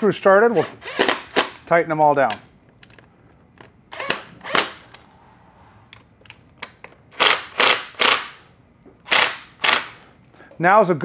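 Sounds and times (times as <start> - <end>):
electric screwdriver bursts: 7.2 - 8.4, 9.1 - 10.0.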